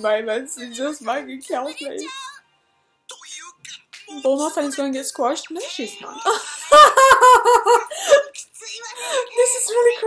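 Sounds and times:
young woman laughing: 6.2 - 8.3.

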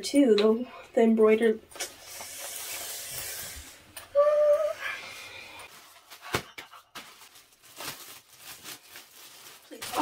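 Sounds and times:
woman humming: 4.1 - 5.0
plastic packaging rustling: 5.7 - 10.0.

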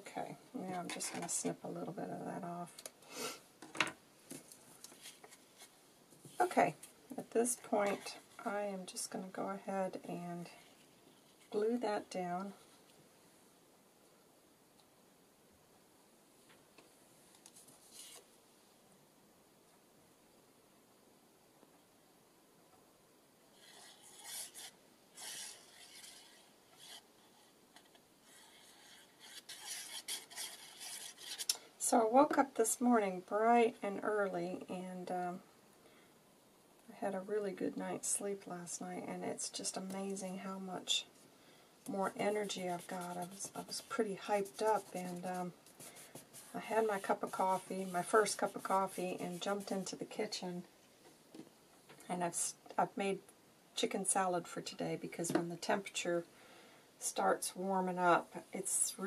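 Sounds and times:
paper cards rubbing: 17.6 - 18.3, 23.6 - 31.5, 42.3 - 49.8
glue nozzle scratching on card: 23.6 - 31.5.

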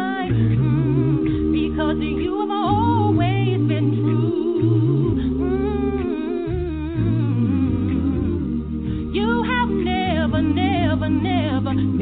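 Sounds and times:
voices singing over drone notes: 0.0 - 12.0.

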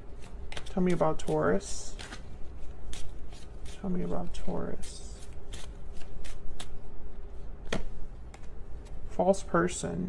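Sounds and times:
cards being shuffled: 0.0 - 9.2.

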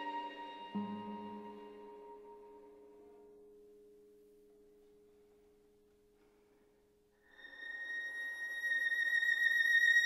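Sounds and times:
soft low chord: 0.0 - 6.5.

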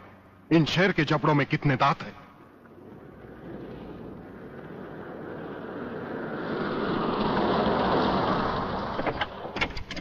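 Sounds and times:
car engine and tyres on dirt: 0.0 - 10.0.

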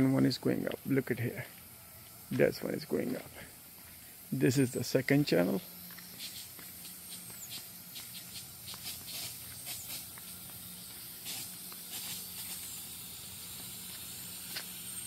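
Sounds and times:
sprinkler spray hissing: 0.0 - 15.0.

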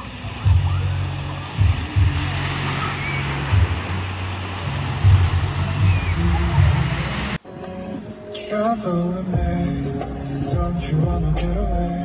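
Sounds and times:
waves washing on sandy shore: 0.0 - 7.4
wind buffeting microphone: 0.0 - 7.4.

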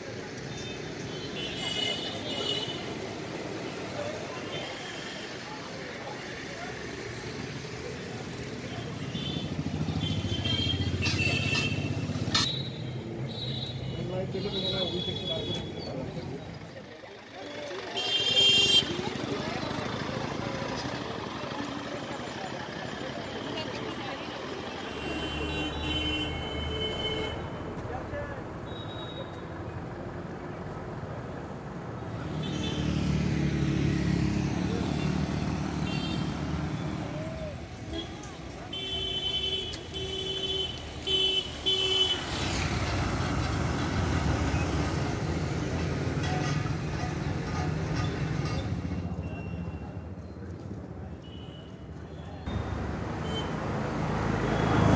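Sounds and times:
motor vehicles passing: 5.2 - 13.2, 15.4 - 28.6, 29.5 - 51.2, 51.9 - 54.9.

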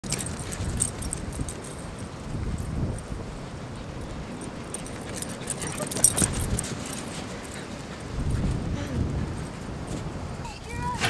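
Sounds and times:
collar tags jingling: 0.0 - 11.0
dog galloping: 3.8 - 9.9.

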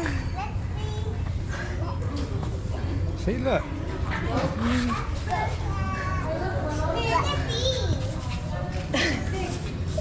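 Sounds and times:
children's voices: 0.0 - 2.4, 4.4 - 8.4
crowd chatter: 0.0 - 10.0.

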